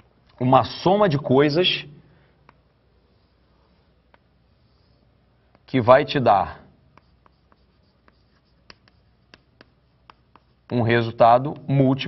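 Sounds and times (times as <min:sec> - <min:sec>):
chalk tapping on chalkboard: 0:02.4 - 0:02.7, 0:03.7 - 0:05.8, 0:06.9 - 0:12.0.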